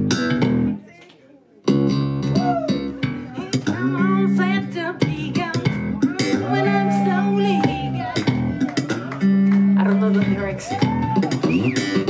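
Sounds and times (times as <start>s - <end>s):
electric bass guitar: 0.0s - 0.8s, 1.7s - 12.0s.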